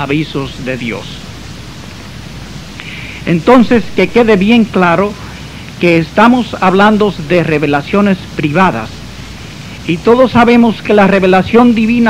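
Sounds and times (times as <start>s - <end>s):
recording hiss: 0.0s - 12.0s.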